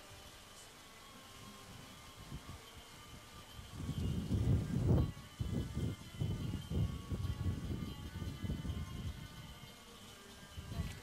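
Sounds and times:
wind buffeting microphone: 3.5 - 9.6.

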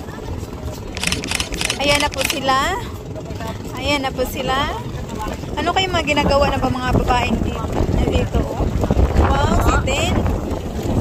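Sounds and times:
wind buffeting microphone: 3.8 - 11.0.

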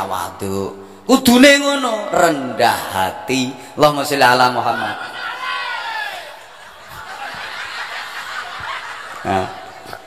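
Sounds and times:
audience chuckling and laughing: 6.3 - 10.0.

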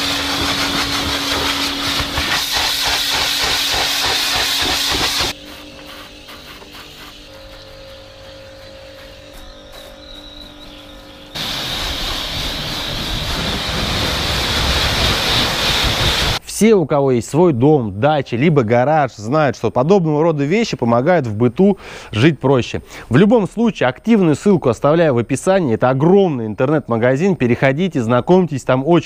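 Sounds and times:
pressure washer water jet hiss: 0.0 - 16.4
steady hum: 0.0 - 16.4.

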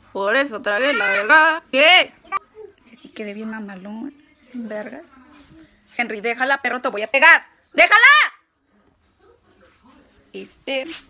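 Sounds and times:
woman shouting: 7.8 - 8.4.

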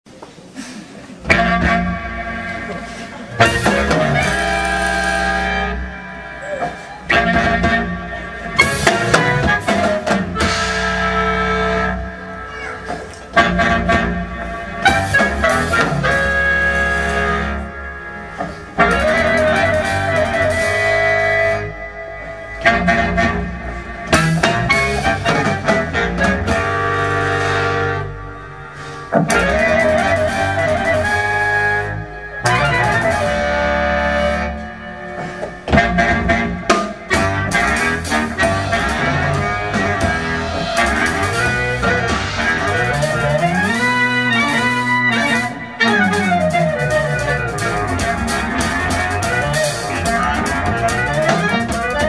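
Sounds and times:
band music: 0.1 - 52.0.

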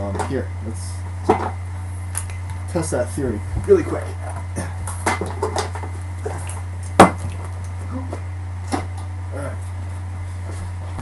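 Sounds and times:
steady low hum: 0.0 - 11.0
equipment knocking and clattering: 3.5 - 6.4.

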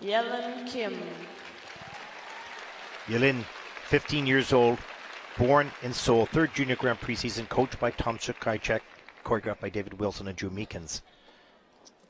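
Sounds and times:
audience applauding: 0.7 - 11.0.

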